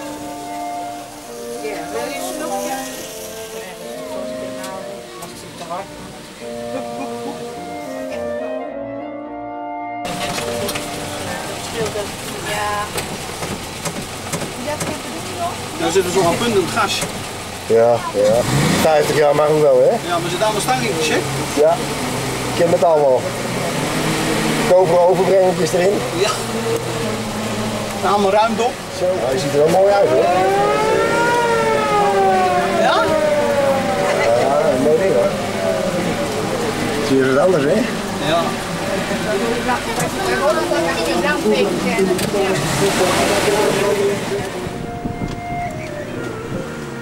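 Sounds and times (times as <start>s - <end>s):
fire engine engine rumbling: 0.0s - 47.0s.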